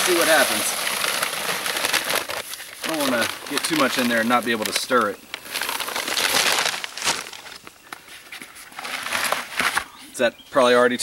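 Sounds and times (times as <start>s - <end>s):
dry concrete mix pouring: 0.0s - 7.6s
paper sack crinkling: 0.0s - 9.9s.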